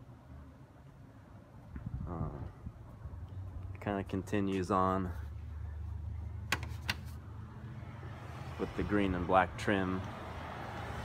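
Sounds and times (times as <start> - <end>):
phone handling noise: 6.5 - 7.2.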